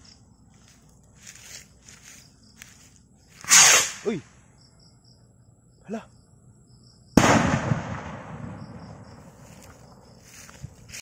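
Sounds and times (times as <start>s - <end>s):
skyrocket bang with echo: 7.2s - 9.0s.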